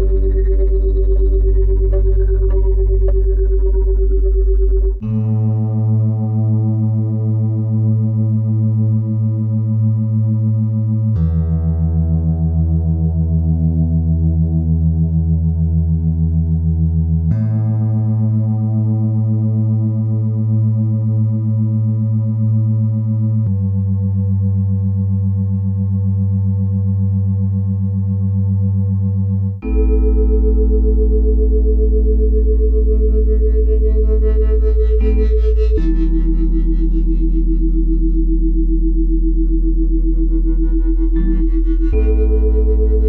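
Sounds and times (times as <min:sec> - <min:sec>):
sustained electronic drone: 0:00.0 - 0:05.2, 0:29.6 - 0:43.0
low synthesized drone tones: 0:00.0 - 0:43.0.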